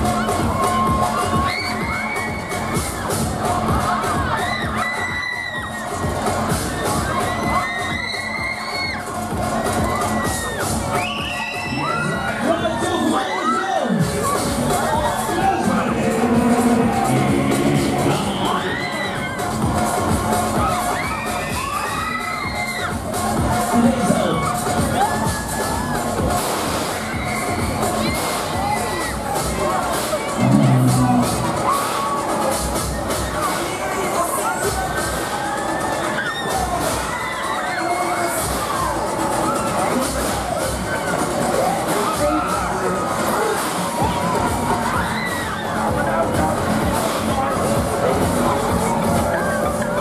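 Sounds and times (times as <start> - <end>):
fairground ride music: 0.0 - 50.0
riders screaming: 6.5 - 9.1, 34.2 - 40.1, 41.6 - 46.4.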